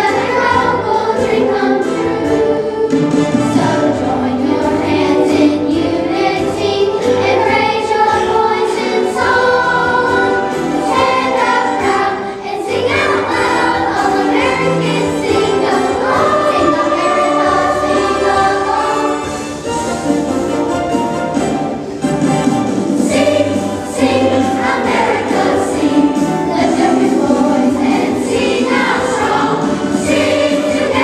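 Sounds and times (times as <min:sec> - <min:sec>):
children's choir singing: 0:00.0 - 0:20.3, 0:21.7 - 0:31.0.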